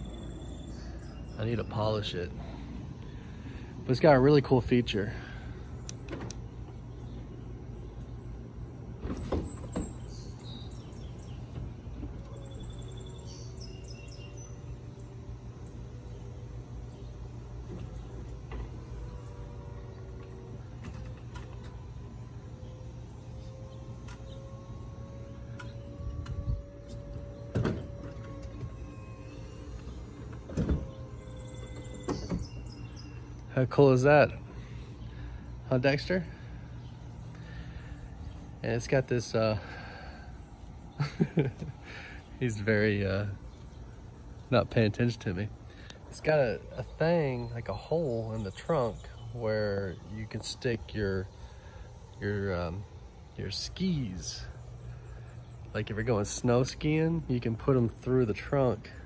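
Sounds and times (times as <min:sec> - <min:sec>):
low motor hum: 0:00.0 - 0:59.0.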